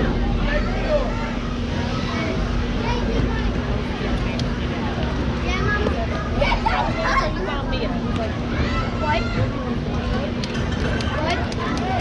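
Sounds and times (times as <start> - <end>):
continuous low rumble: 0.0 - 12.0
spectators chattering: 0.0 - 12.0
steady low hum: 0.0 - 12.0.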